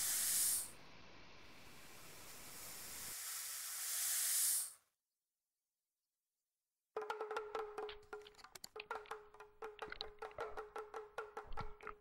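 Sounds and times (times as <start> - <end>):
hissing noise: 0.0 - 4.8.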